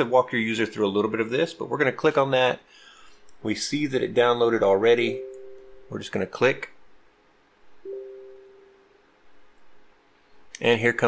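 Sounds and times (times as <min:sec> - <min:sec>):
computer alert chime: 0:05.0 - 0:06.0, 0:07.9 - 0:09.0.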